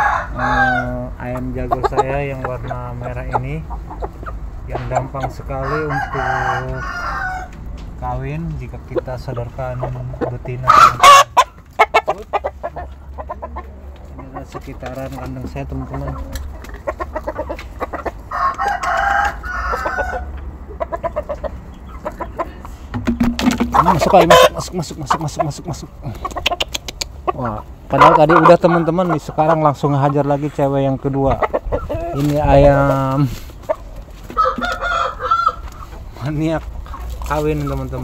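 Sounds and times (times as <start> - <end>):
rooster crowing: 0.0 - 1.0, 5.5 - 7.6, 18.3 - 20.4, 34.3 - 35.6
chicken clucks: 0.0 - 38.0.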